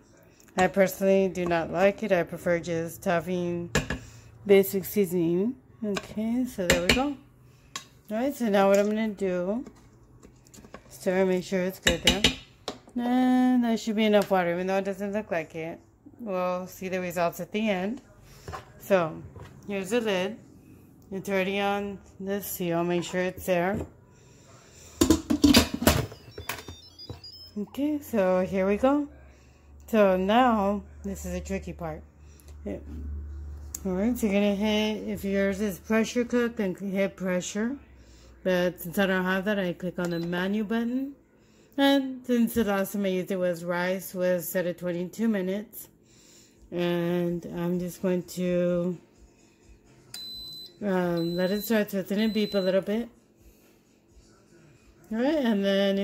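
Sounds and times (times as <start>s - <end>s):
pressure cooker high beep: 25.9s - 27.8s, 40.0s - 40.5s, 50.2s - 52.9s.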